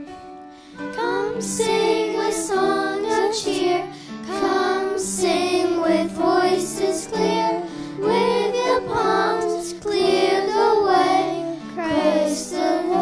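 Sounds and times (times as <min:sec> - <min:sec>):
girls singing into microphones: 0:00.9 - 0:13.0.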